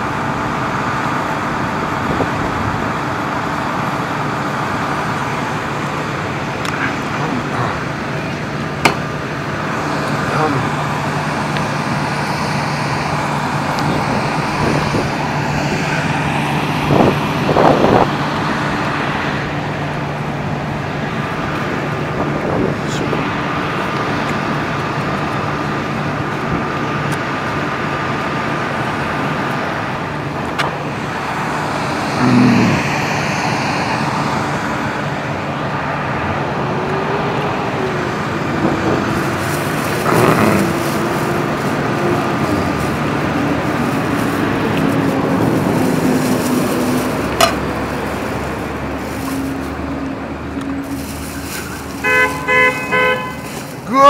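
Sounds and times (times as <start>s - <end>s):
low engine hum: 0.0s - 54.0s
road noise from cars: 0.0s - 54.0s.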